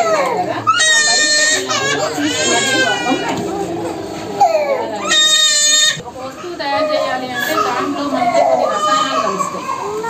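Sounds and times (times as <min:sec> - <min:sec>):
baby crying: 0:00.0 - 0:03.4, 0:04.4 - 0:06.0, 0:07.0 - 0:10.0.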